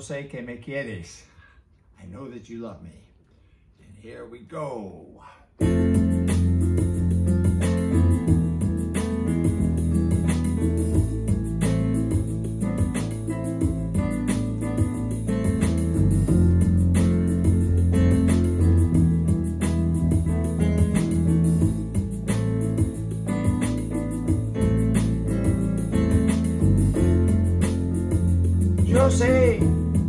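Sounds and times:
bass line: 5.6s - 30.0s
drum beat: 5.6s - 30.0s
electronic keyboard chords: 5.6s - 30.0s.

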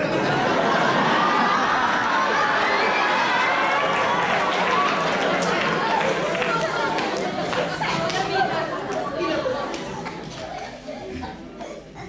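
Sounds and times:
audience chattering in a hall: 0.0s - 12.0s.

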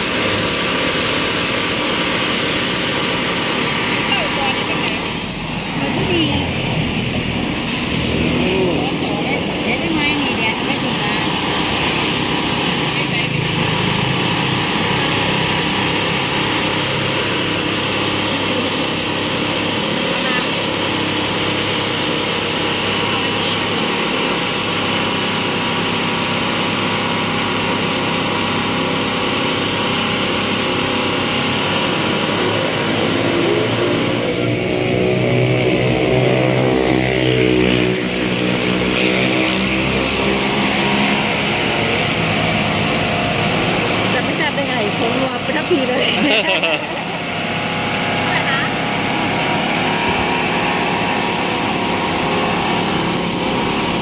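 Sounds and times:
engine hum: 0.0s - 54.0s
voices talking: 3.8s - 24.4s, 38.4s - 53.4s.

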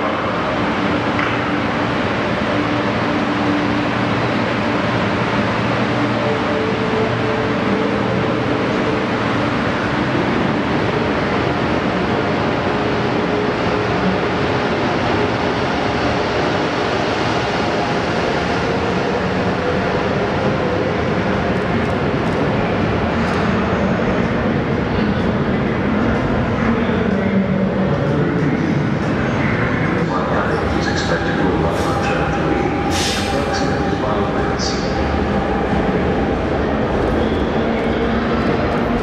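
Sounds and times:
train wheels on rail: 27.9s - 39.0s.

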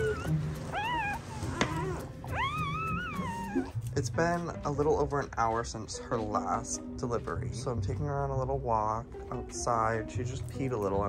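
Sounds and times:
dog whining: 0.0s - 3.9s.

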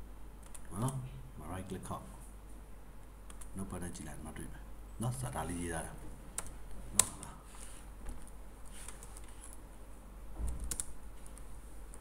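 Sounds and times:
keyboard keystrokes: 10.5s - 12.0s.

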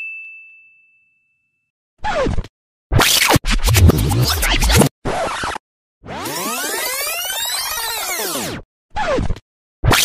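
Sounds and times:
record scratch: 2.1s - 10.0s.

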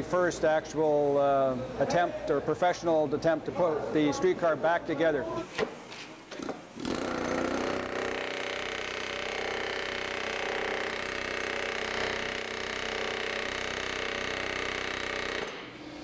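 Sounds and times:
pneumatic rivet gun hammering: 5.6s - 15.8s.

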